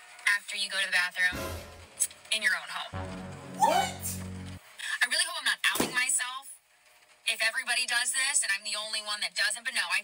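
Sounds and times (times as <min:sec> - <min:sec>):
background music with bass line: 0:01.4 - 0:02.1, 0:03.0 - 0:04.6
person speaking: 0:03.4 - 0:04.3.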